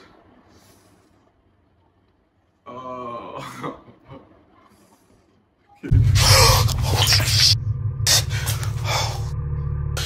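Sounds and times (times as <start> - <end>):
loud low drone: 5.9 - 10.0.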